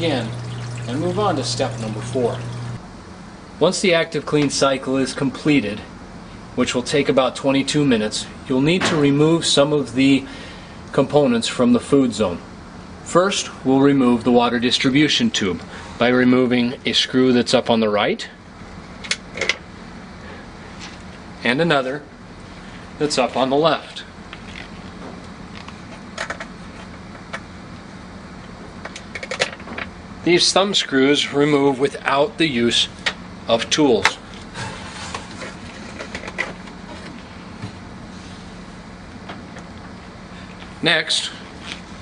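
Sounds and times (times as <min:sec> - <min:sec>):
low steady hum: 0:00.0 - 0:42.0.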